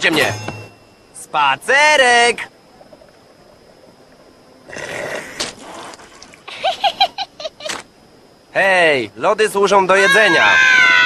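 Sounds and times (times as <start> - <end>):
girl giggling: 6.5 - 7.8.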